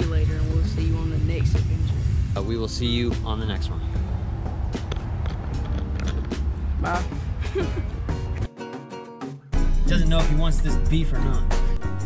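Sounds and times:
low outdoor rumble: 0:00.0 - 0:08.2.

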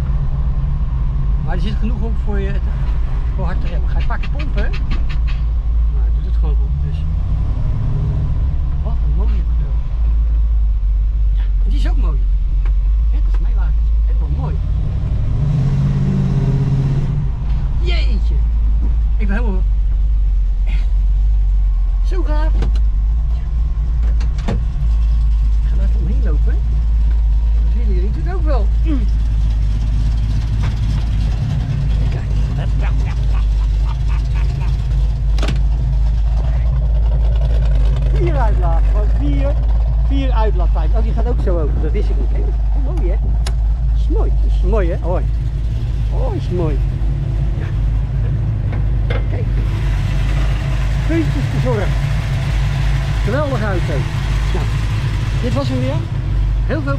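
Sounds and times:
car engine rumbling: 0:00.0 - 0:56.9.

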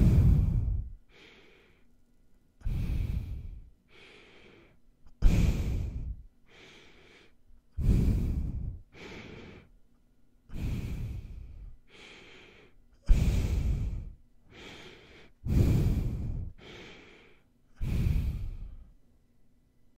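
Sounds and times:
heavy nose breathing on microphone: 0:00.0 - 0:01.8, 0:02.6 - 0:09.8, 0:10.5 - 0:18.9.

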